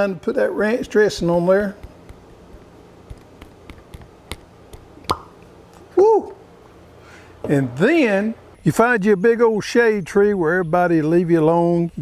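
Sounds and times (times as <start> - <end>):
room hum: 0.0 - 12.0.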